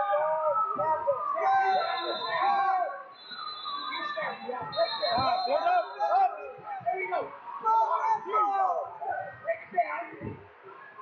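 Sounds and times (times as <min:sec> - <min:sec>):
people shouting over one another: 0:00.0 - 0:03.0.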